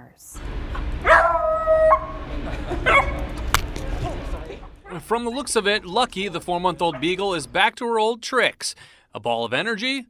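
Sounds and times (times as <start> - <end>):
puppy barking: 1.0 - 2.1, 2.8 - 3.3, 4.8 - 5.2, 6.2 - 7.5.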